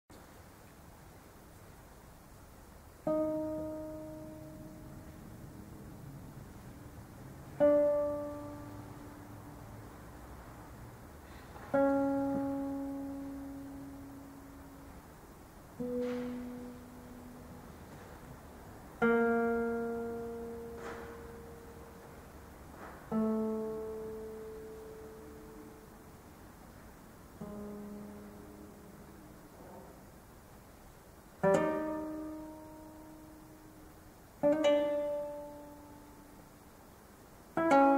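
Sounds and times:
classical guitar chords: 0:02.4 - 0:37.9.

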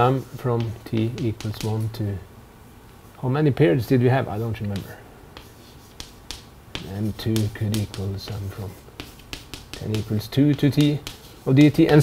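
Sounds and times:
chalk tapping on chalkboard: 0:00.1 - 0:02.0, 0:04.6 - 0:12.0.

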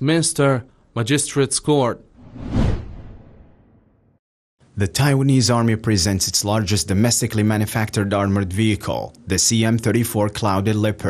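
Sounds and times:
low rumble: 0:02.2 - 0:03.8
whoosh sound effect: 0:02.2 - 0:03.8.

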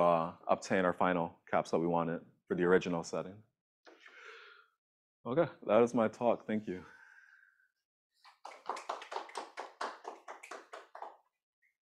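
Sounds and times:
hand clapping: 0:08.2 - 0:11.4.

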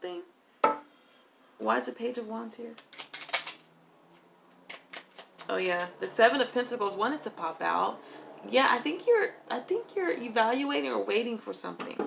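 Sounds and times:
cards being shuffled: 0:02.8 - 0:03.7, 0:04.6 - 0:06.0.

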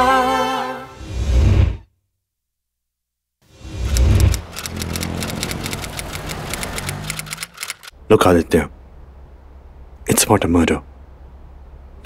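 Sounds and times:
city traffic rumble: 0:03.4 - 0:12.0
rapid keyboard typing clicks: 0:03.9 - 0:07.9.

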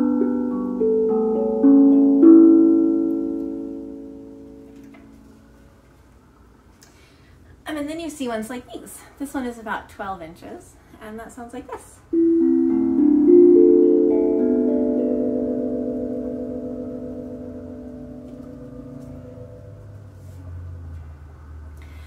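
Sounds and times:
steel tongue drum notes: 0:00.0 - 0:05.8, 0:12.1 - 0:20.9.

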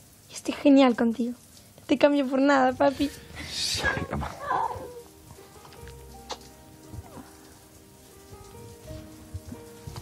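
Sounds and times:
faint crackling hiss: 0:00.0 - 0:10.0
soft background music: 0:01.9 - 0:10.0.

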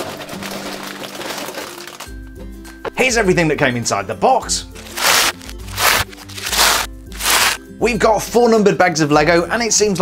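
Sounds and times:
plastic bags crinkling and rattling: 0:00.0 - 0:02.3, 0:04.8 - 0:07.6
background music: 0:00.0 - 0:10.0.

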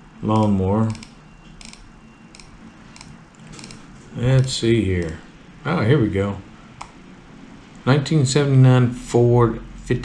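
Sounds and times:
laptop controls clicking: 0:00.3 - 0:03.8.

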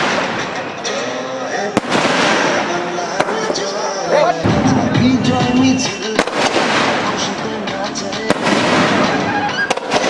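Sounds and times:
sharp bangs: 0:00.0 - 0:03.8, 0:04.4 - 0:10.0
continuous dense noise: 0:00.0 - 0:10.0
firework shells bursting: 0:01.8 - 0:03.7, 0:05.8 - 0:10.0.

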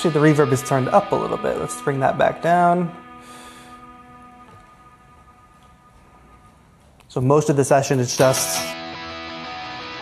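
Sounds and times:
distorted electric guitar chord: 0:00.0 - 0:06.5.

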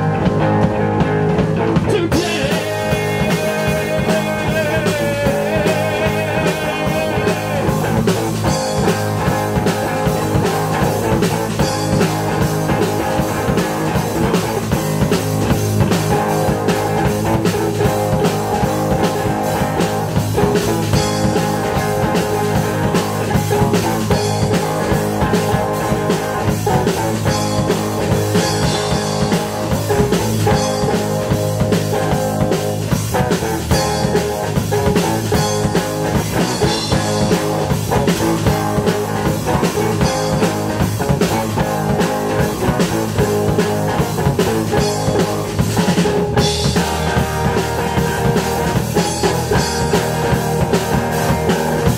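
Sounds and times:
bass guitar: 0:00.0 - 0:51.9
distorted electric guitar: 0:00.0 - 0:51.9
drum kit steady beat: 0:00.0 - 0:51.9.

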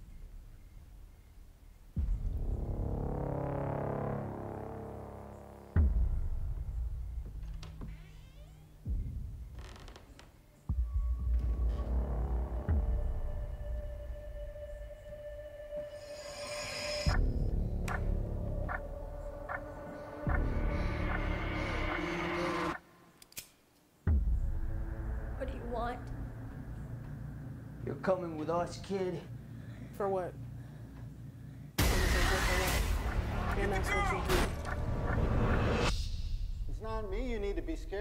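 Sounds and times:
dense sustained drone: 0:02.0 - 0:07.2, 0:11.1 - 0:23.1, 0:24.2 - 0:37.4
faint creaking squeak: 0:07.4 - 0:10.6.

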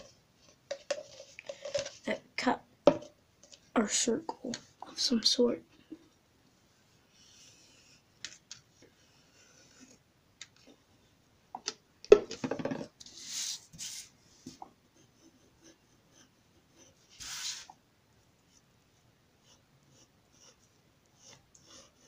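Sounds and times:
paper swishing: 0:17.2 - 0:17.7.

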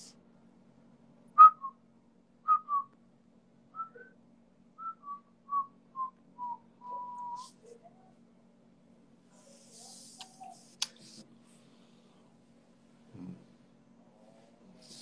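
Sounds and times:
man whistling a tune: 0:01.4 - 0:01.8, 0:02.5 - 0:02.9, 0:03.8 - 0:04.1, 0:04.8 - 0:07.5.

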